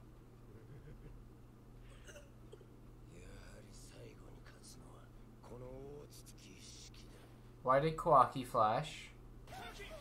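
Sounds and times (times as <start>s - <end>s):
low electrical hum: 0.0s - 10.0s
faint cartoon dialogue: 9.4s - 10.0s.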